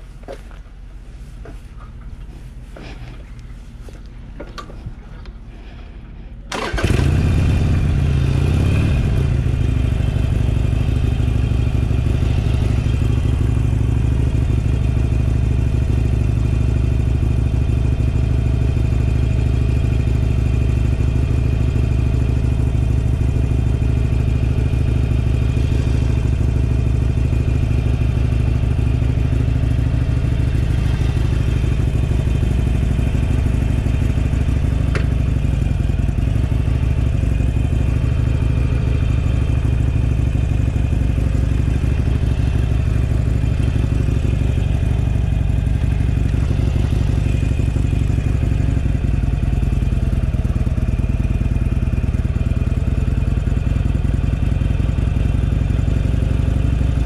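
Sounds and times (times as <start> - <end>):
motorcycle engine idling: 4.3 - 57.0.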